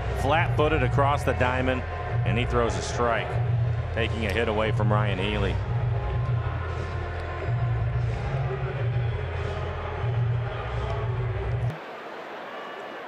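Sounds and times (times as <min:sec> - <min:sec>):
ballpark crowd noise: 0:00.0 - 0:13.0
crowd murmur: 0:00.0 - 0:13.0.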